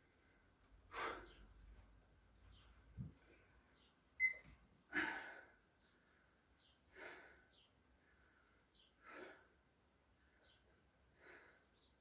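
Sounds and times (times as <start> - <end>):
person breathing hard: 0.0 - 1.5, 4.9 - 9.6, 10.2 - 11.9
brief high squeak: 4.2 - 4.5.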